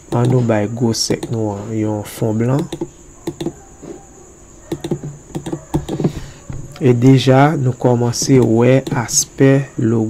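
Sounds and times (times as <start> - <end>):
computer keyboard clicking: 0.1 - 0.4, 1.1 - 1.4, 2.5 - 3.6, 4.6 - 6.1.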